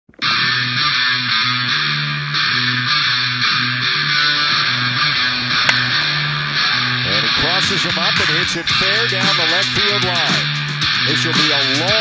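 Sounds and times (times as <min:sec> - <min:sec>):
background music with bass line: 0:00.2 - 0:12.0.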